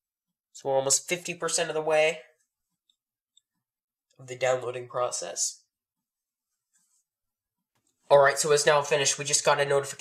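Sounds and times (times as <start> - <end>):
man speaking: 0.6 - 2.4, 4.2 - 5.8, 8.0 - 10.0.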